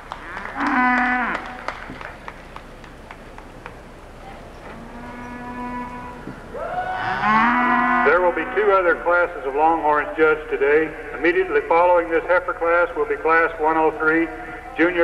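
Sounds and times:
cattle mooing: 0.2s - 1.5s, 4.6s - 6.4s, 7.0s - 9.0s.

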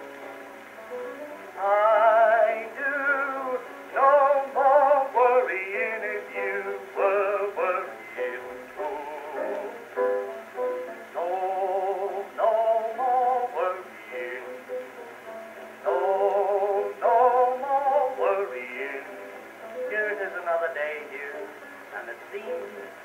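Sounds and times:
old phonograph record melody: 0.0s - 23.0s.

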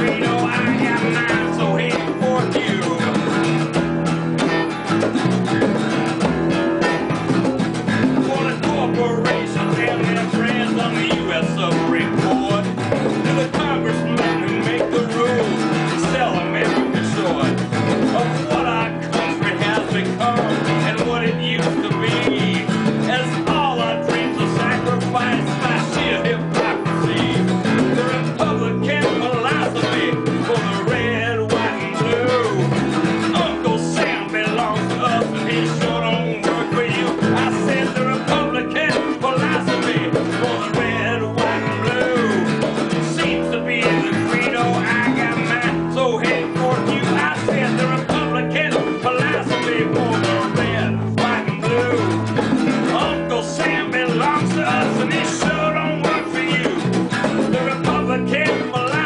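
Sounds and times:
acoustic guitar: 0.0s - 59.0s
electric guitar: 0.0s - 59.0s.

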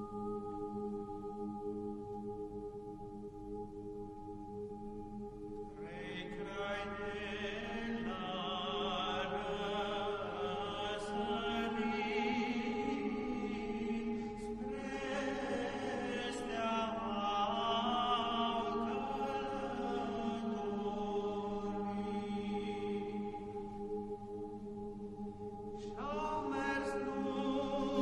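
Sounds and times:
vocal ensemble singing a carol: 5.7s - 28.0s.

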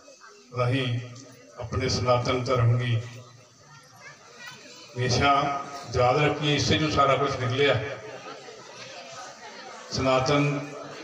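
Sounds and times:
murmur of voices: 0.0s - 11.0s.

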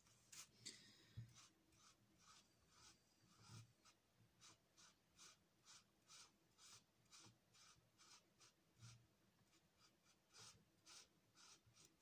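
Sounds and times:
marker scratching on paper: 1.3s - 12.0s.

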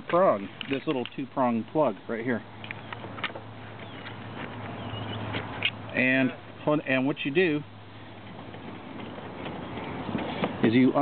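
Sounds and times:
handling noise: 0.0s - 6.8s, 8.1s - 11.0s.

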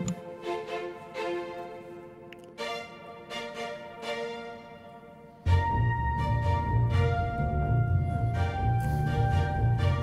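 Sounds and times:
orchestral waltz music: 0.0s - 10.0s.

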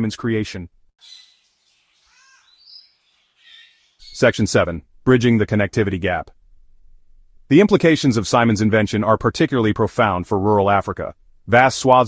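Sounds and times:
light background hiss: 0.2s - 12.0s
faint bird calls: 1.0s - 4.3s.

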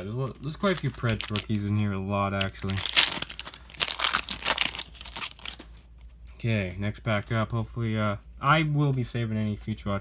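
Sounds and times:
card pack wrapper crinkling and tearing: 0.0s - 5.8s.

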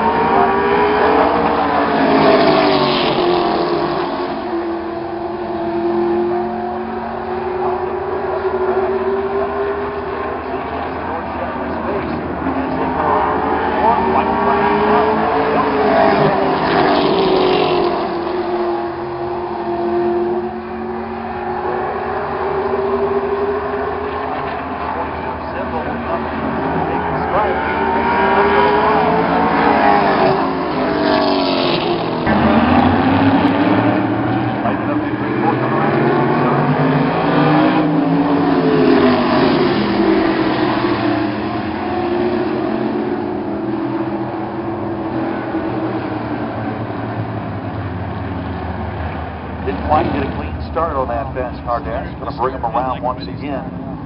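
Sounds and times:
racing car engines passing: 0.0s - 54.0s.

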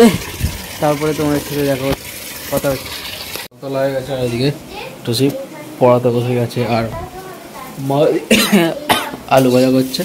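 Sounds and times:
steady hiss: 7.2s - 10.0s
man talking: 7.8s - 10.0s.

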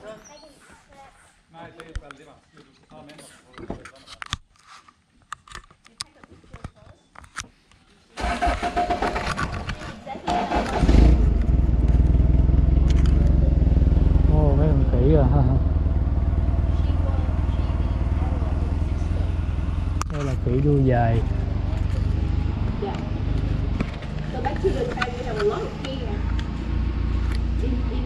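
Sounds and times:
voices: 5.8s - 11.0s, 12.7s - 28.0s
engine starting and idling: 8.2s - 13.4s.

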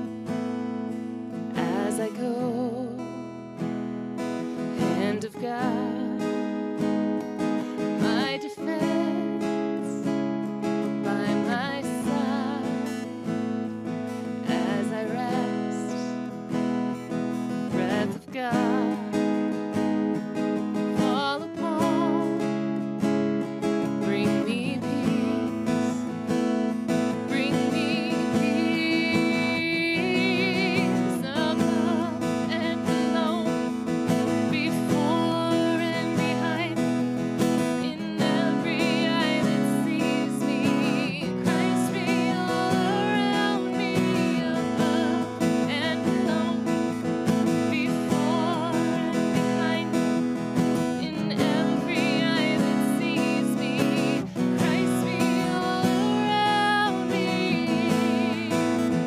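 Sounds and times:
acoustic guitar strumming: 0.0s - 59.0s
woman singing with vibrato: 1.4s - 3.2s, 4.6s - 6.9s, 7.6s - 13.5s, 14.2s - 16.3s, 17.5s - 22.7s, 23.6s - 59.0s.

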